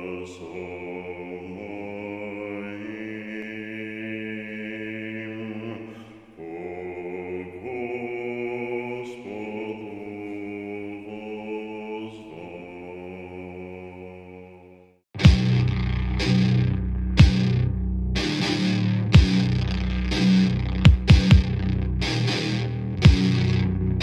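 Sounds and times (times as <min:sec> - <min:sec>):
slow chant-like music: 0:00.0 - 0:24.0.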